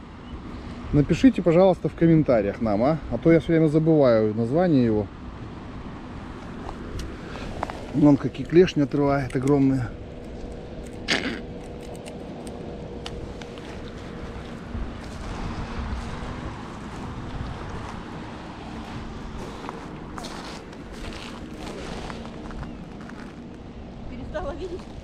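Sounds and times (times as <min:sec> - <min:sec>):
outdoor beach noise: 0:00.0 - 0:25.0
sharp clicks: 0:10.2 - 0:13.5
footsteps crunching on pebbles: 0:13.1 - 0:23.6.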